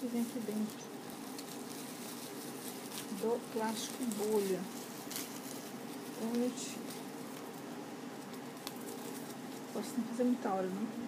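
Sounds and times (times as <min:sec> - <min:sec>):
bubble wrap crackling: 0:00.0 - 0:11.0.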